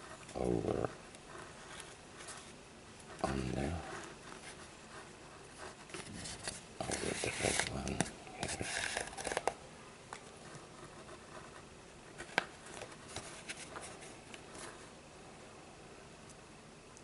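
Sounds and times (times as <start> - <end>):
cord rustling and scraping: 0.0 - 15.0.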